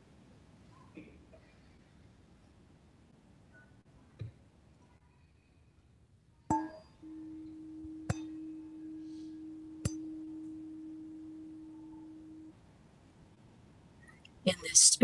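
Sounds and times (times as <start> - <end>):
chime ringing tone: 6.6 - 12.6.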